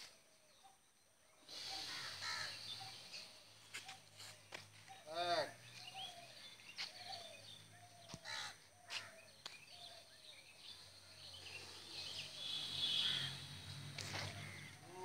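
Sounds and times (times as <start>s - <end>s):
birds calling: 0.0s - 15.0s.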